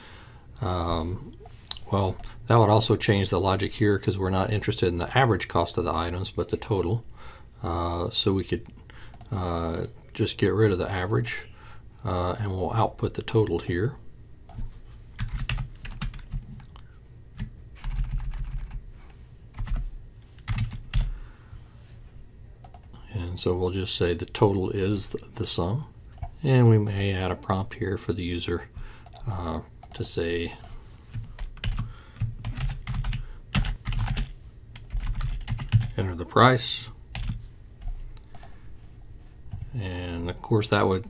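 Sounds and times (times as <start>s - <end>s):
typing on computer keyboard: 15.2s - 16.4s, 17.4s - 18.8s, 20.5s - 21.1s, 31.4s - 35.9s.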